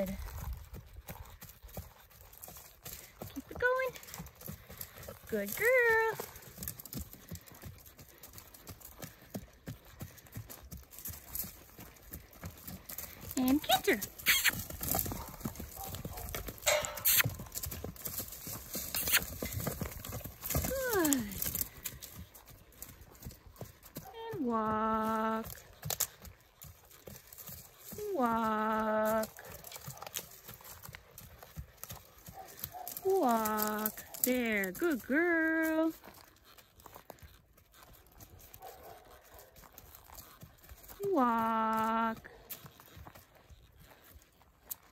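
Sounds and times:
horse hooves cantering on dirt: 0:00.0 - 0:44.9.

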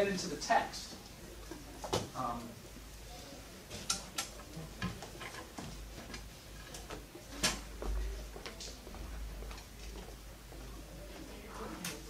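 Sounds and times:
pens and paper tapping on desks: 0:01.4 - 0:02.2, 0:03.7 - 0:10.2.

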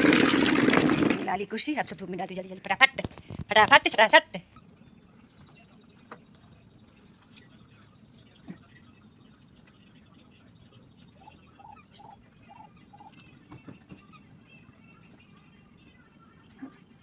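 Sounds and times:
faint bird chirps: 0:04.5 - 0:16.4.

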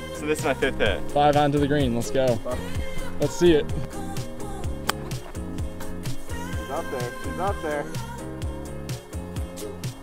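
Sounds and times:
background music with beat: 0:00.0 - 0:10.0
golf club striking ball: 0:03.7 - 0:06.4.

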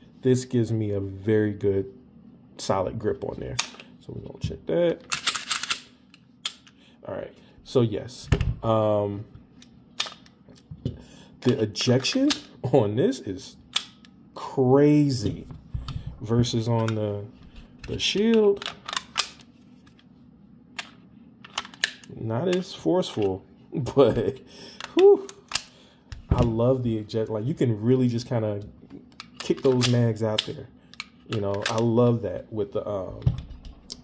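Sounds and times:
pistol magazine release clicks: 0:05.1 - 0:06.7.

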